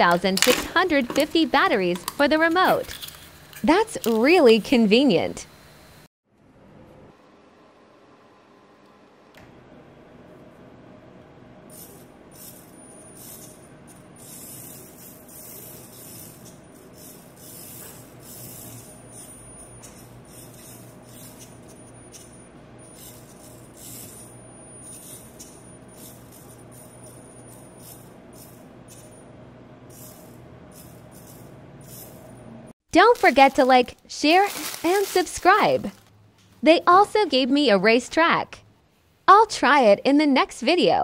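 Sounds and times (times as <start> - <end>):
small electric motor whirring: 11.7 - 29.1, 29.9 - 32.2
thin high whine: 11.7 - 32.7.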